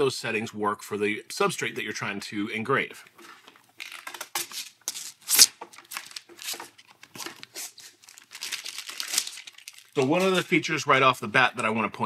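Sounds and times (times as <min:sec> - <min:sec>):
plastic packaging crinkling: 0:03.2 - 0:10.8.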